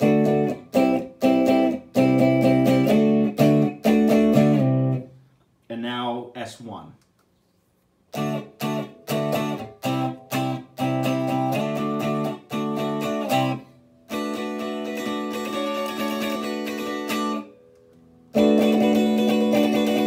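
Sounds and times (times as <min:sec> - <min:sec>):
electric guitar strummed chords: 0:00.0 - 0:05.0, 0:08.1 - 0:20.0
electric guitar chord stabs: 0:08.2 - 0:20.0.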